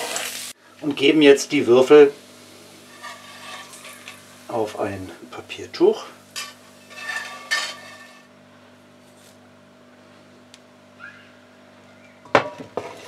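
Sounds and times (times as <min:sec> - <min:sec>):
metal spatula scraping frying pan: 0:02.8 - 0:04.2, 0:06.4 - 0:08.3.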